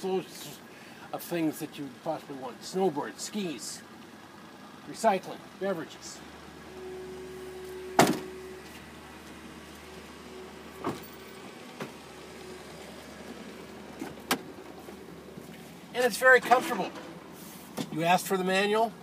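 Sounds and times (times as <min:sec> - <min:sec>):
car liftgate slamming shut: 0:07.8 - 0:08.7, 0:10.7 - 0:12.0, 0:14.0 - 0:14.6.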